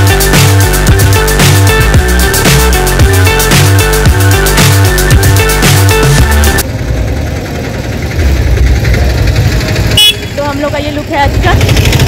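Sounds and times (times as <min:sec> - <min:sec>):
background music: 0:00.0 - 0:06.6
rumble of vehicles: 0:00.0 - 0:12.0
women talking: 0:10.3 - 0:11.9.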